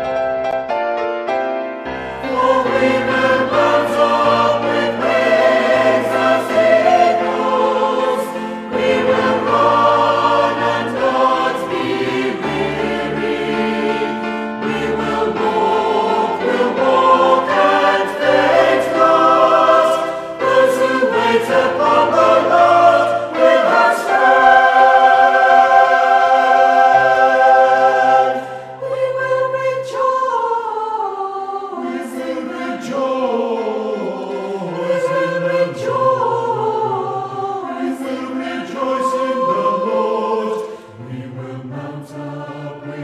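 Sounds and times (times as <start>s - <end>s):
choir singing worship song: 1.9s - 43.0s.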